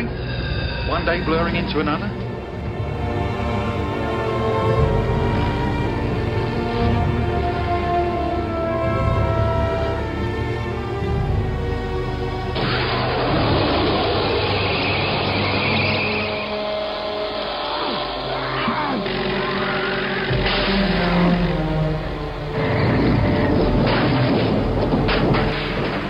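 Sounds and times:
orchestral music: 0:00.0 - 0:26.0
crashing impacts: 0:12.6 - 0:16.6, 0:23.4 - 0:26.0.

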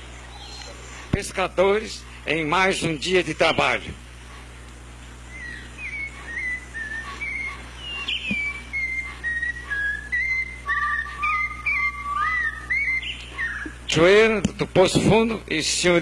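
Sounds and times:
steady low hum: 0:00.0 - 0:16.0
person whistling a tune: 0:05.4 - 0:13.8.

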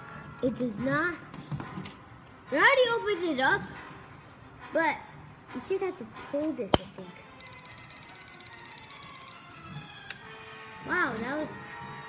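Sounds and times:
high electronic tone: 0:07.4 - 0:09.4.

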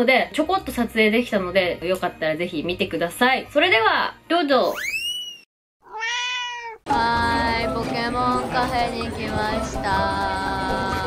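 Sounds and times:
short rising squeak: 0:04.7 - 0:05.5
meow-like call: 0:05.8 - 0:06.8.

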